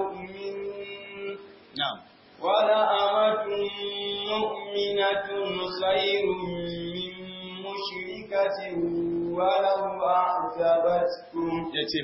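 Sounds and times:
man chanting melodically: 2.5 - 12.0.

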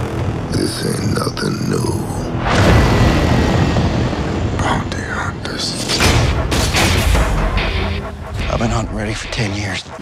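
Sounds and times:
low rumble: 0.0 - 10.0.

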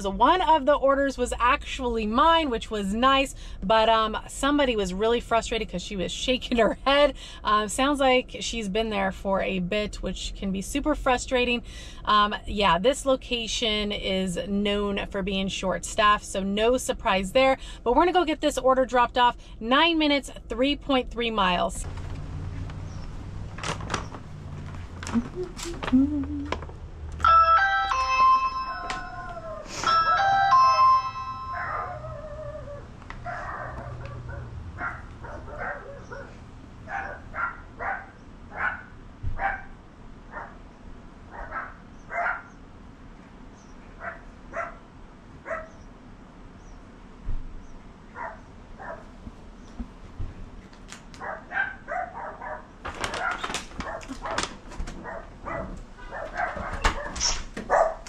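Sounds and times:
doorbell chime: 27.2 - 32.1
dogs barking behind door: 31.5 - 42.6, 43.9 - 45.9, 48.0 - 49.2, 51.1 - 58.0.

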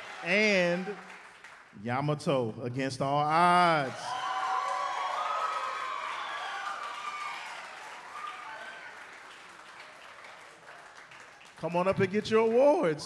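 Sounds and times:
audience applauding and cheering: 0.0 - 1.8, 3.6 - 12.9.

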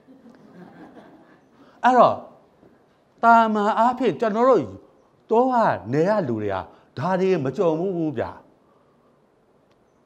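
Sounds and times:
man's amplified voice: 1.8 - 2.4, 3.2 - 8.5.

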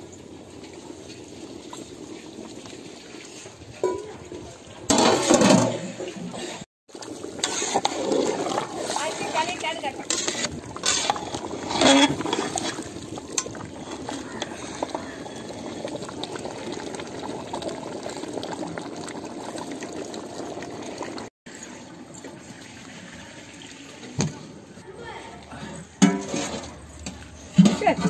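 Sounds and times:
stew bubbling in a pot: 0.0 - 24.8.

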